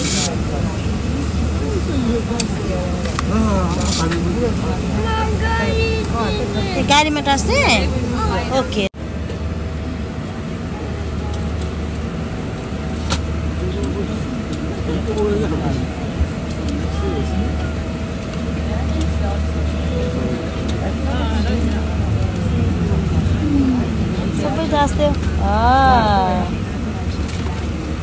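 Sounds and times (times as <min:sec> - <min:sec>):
airliner cabin rumble: 0:00.0 - 0:28.0
faint voices: 0:00.0 - 0:28.0.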